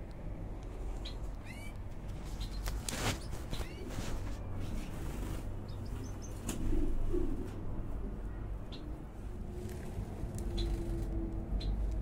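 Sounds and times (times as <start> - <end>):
high bird chirps: 1.0 - 1.8, 2.4 - 3.9.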